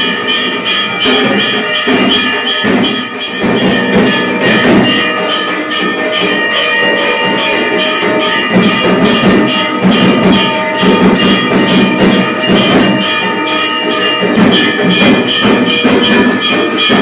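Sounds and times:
temple bells ringing rapidly: 0.0s - 17.0s.

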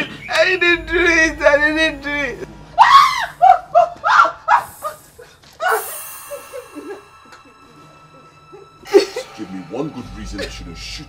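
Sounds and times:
woman's high-pitched frantic cries: 2.8s - 4.7s.

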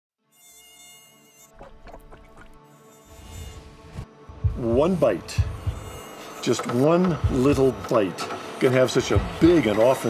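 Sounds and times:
mosquito wing whine: 0.4s - 7.7s
low rumble: 3.8s - 6.0s.

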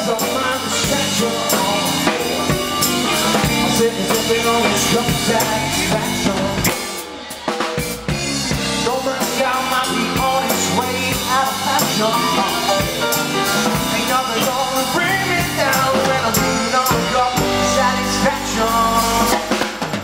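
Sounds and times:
drum kit: 0.0s - 20.0s
electric bass: 0.0s - 20.0s
electric guitar: 0.0s - 20.0s.

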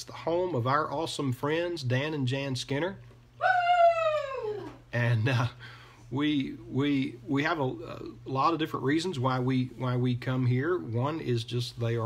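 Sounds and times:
animal call falling in pitch: 3.4s - 4.8s.

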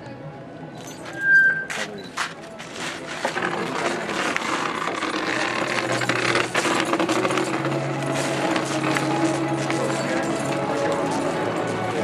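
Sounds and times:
footsteps: 0.8s - 12.0s.

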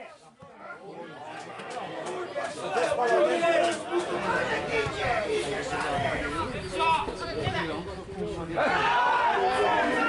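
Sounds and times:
spectators talking and calling out: 0.0s - 10.0s.

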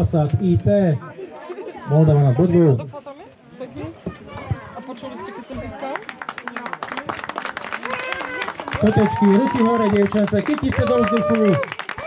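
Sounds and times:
crowd applauding: 5.7s - 12.0s.

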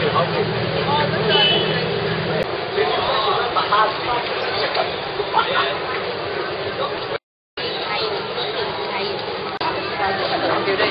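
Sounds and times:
chatter of passers-by: 0.0s - 10.9s.

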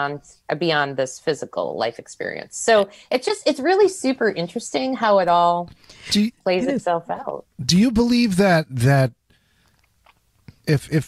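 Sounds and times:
person speaking: 5.6s - 9.1s, 10.5s - 11.0s.

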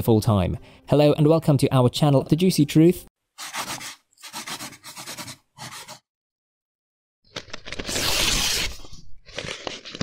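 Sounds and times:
pencil scratching on paper: 3.4s - 6.1s.

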